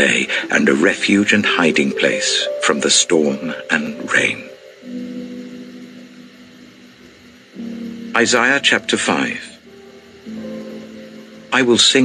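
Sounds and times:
soft instrumental music chords: 0.0 - 12.0.

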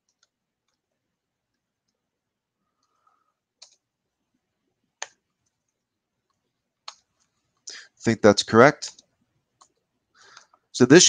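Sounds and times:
computer keyboard keystrokes: 0.0 - 0.8, 3.6 - 3.8.

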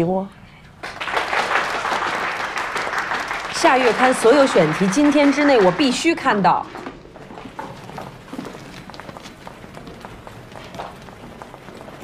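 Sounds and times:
office bustle: 0.8 - 12.0
footsteps on hard floor: 6.2 - 12.0.

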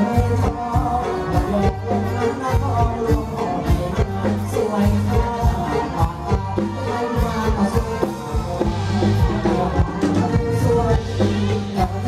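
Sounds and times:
drum kit beat: 0.0 - 12.0
live band music: 0.0 - 12.0.

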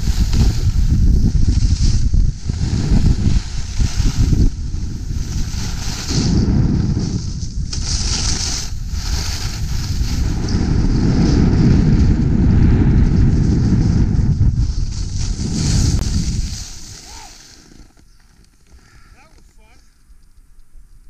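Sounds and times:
skis hissing over snow: 0.0 - 11.8, 14.6 - 19.7
wind buffeting microphone: 0.0 - 17.9.

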